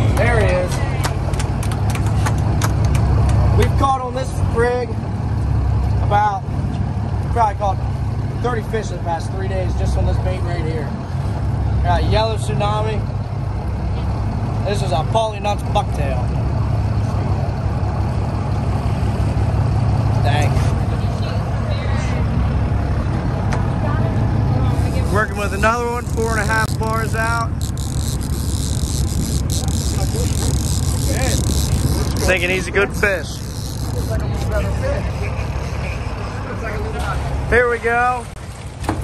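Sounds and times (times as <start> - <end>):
boat engine running low: 0.0 - 39.0
wind: 0.0 - 39.0
faint voices: 29.3 - 37.6.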